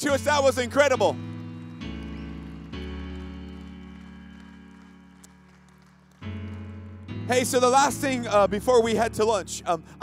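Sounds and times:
background music of held chords: 6.1 - 10.0.

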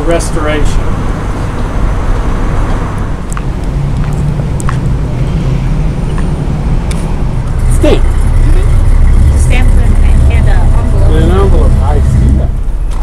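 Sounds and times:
engine hum: 0.0 - 13.0
low rumble of passing vehicles: 0.0 - 13.0.

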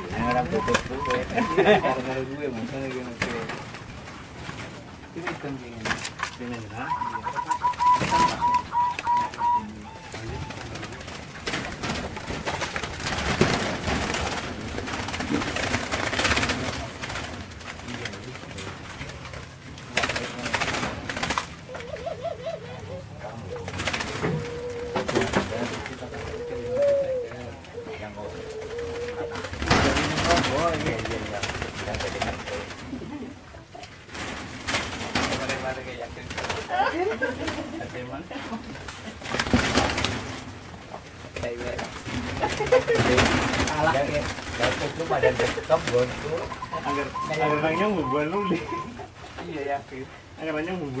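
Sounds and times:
doves cooing: 0.0 - 51.0.

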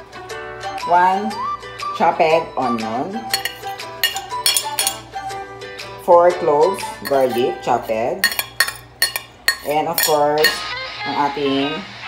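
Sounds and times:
metal spoon scraping a plate: 3.3 - 5.1, 7.0 - 10.7.

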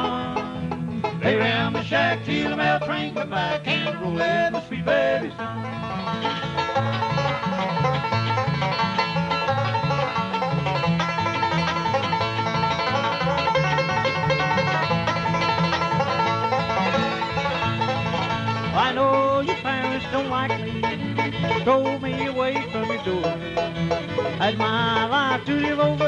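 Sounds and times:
acoustic guitar rhythm: 0.0 - 26.0
banjo picking fast notes: 0.0 - 26.0
walking upright bass: 0.0 - 26.0.

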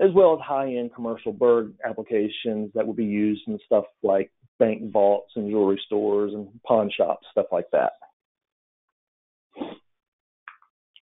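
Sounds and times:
mouth smack: 9.6 - 9.8.

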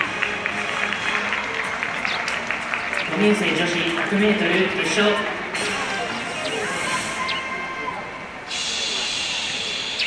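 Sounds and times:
faint voices: 0.0 - 10.0
high-pitched outdoor hiss: 4.8 - 10.0.

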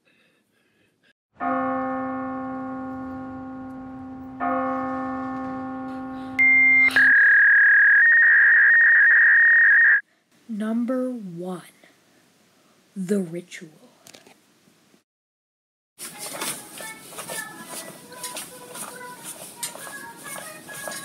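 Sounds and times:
deep bell tolling: 1.4 - 6.9
piercing high tone: 1.4 - 10.0.

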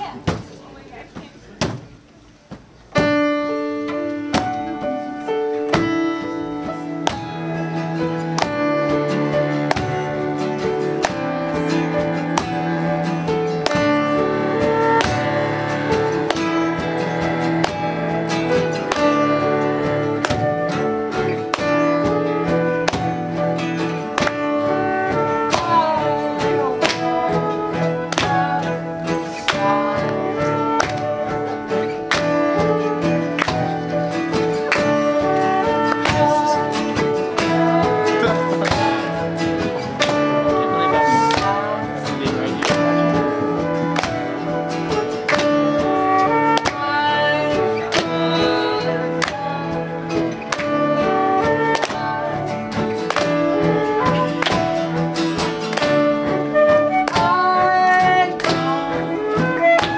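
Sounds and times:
acoustic guitar: 0.0 - 59.9
piano chords: 2.6 - 59.9
bowed cello notes: 3.0 - 59.9
flute: 3.1 - 59.9.

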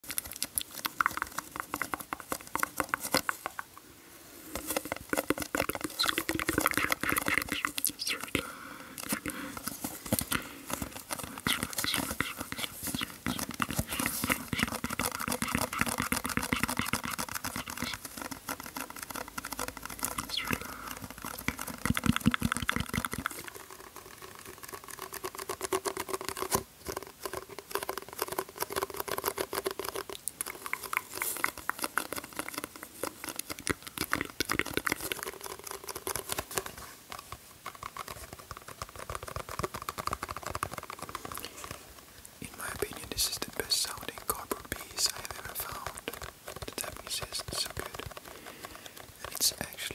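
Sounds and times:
sponge squeezed and squelching: 4.6 - 8.4, 9.0 - 36.8.

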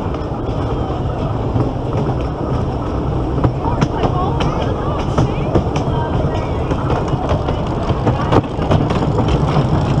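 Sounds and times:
roller coaster wheels rumbling: 0.0 - 10.0
track clacks and knocks: 0.0 - 10.0.

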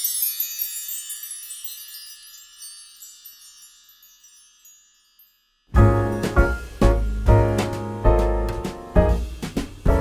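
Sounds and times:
high tinkling chimes: 0.0 - 6.8.

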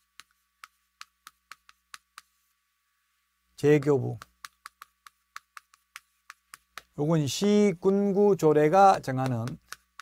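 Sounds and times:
chalk tapping on chalkboard: 0.0 - 2.6, 3.8 - 7.1, 8.8 - 10.0.

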